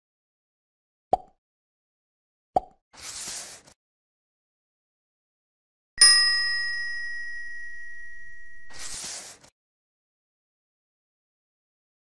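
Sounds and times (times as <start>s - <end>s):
bell ringing: 6.0s - 8.7s.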